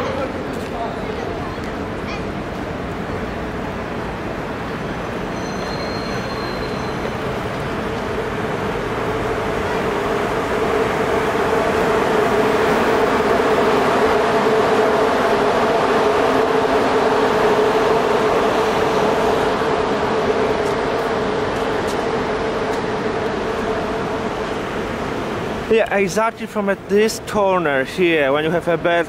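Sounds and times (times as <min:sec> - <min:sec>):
street traffic noise: 0:00.0 - 0:29.0
faint high-pitched squeal: 0:05.2 - 0:07.3.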